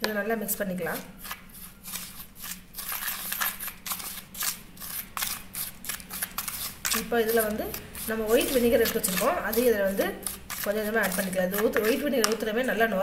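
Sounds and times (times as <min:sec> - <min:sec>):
spoon scraping gritty powder: 0:00.7 - 0:13.0.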